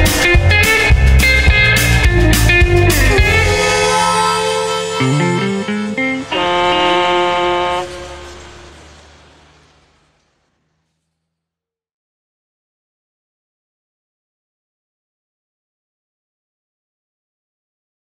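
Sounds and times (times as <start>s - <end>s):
blues-rock band playing: 0.0s - 8.7s
low bass run: 0.0s - 11.1s
guitar chord ringing out: 0.1s - 9.3s.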